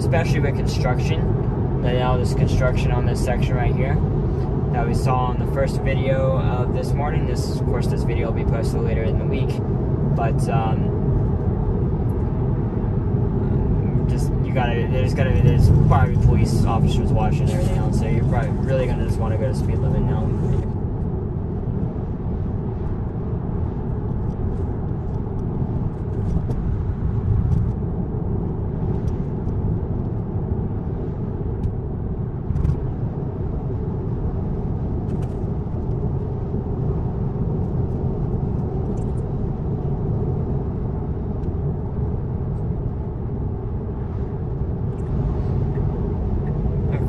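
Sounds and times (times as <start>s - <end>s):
road and tyre noise: 0.0s - 47.0s.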